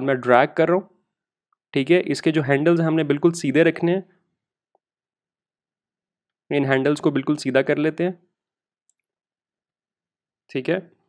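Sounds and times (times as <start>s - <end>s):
man speaking: 0.0s - 0.9s, 1.8s - 4.1s, 6.5s - 8.2s, 10.5s - 10.9s.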